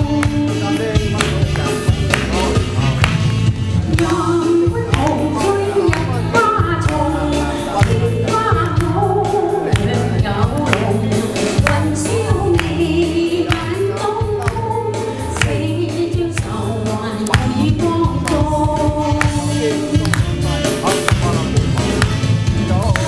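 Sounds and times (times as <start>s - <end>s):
woman singing pop song: 0.0s - 2.6s, 3.8s - 20.2s
backing track with bass and beat: 0.0s - 23.0s.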